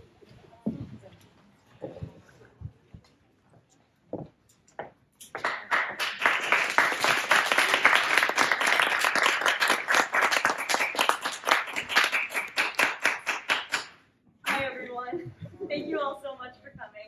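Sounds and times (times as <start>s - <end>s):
audience applause: 5.4s - 13.9s.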